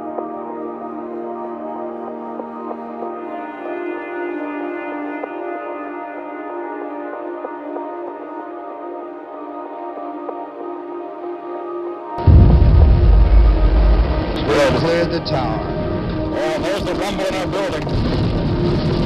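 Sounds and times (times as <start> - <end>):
slow ambient music: 0.0 - 19.0
rocket engines deep rumble: 12.2 - 19.0.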